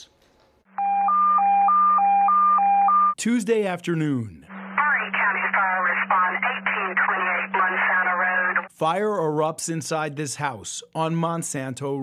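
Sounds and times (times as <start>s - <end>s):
two-tone radio alert tone: 0.7s - 3.2s, 4.5s - 8.7s
steady low hum: 4.4s - 8.7s.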